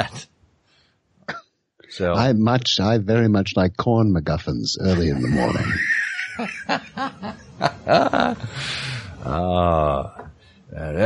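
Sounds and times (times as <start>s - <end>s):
man chuckling: 4.8s - 10.1s.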